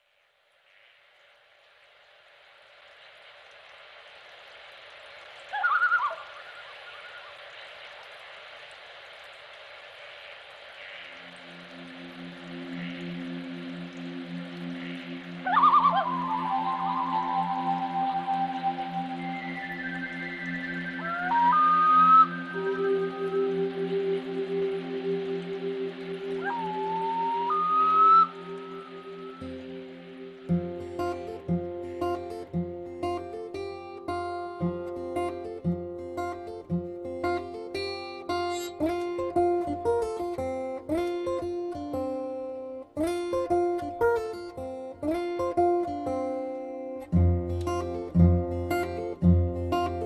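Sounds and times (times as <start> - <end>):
steady hiss: 0.0 - 50.0
loon tremolo call: 5.5 - 7.4, 10.8 - 32.1
low sustained musical chord: 11.2 - 42.9.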